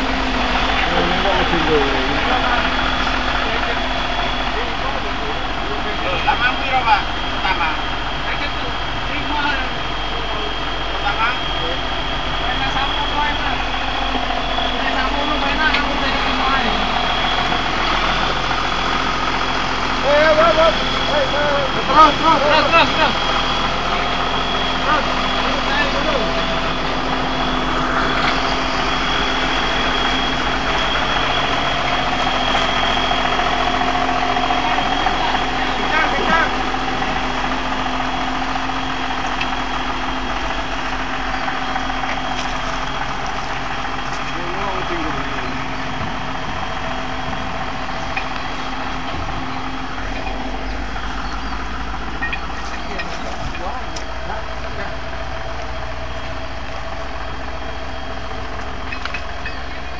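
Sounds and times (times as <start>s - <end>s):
thin high whine: 0.0s - 59.9s
tractor diesel engine running: 0.0s - 59.9s.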